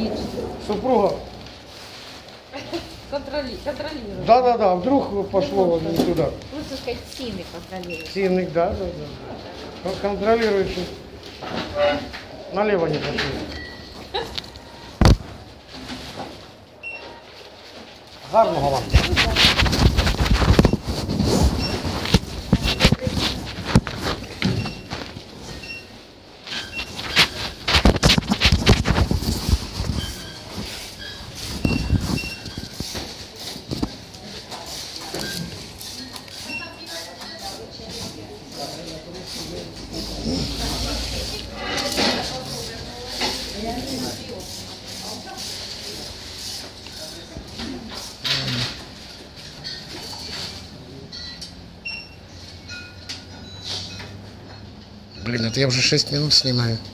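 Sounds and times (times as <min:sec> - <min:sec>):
plastic bags rustling: 0:00.0 - 0:13.2, 0:13.9 - 0:50.7
indistinct background voices: 0:33.0 - 0:48.9.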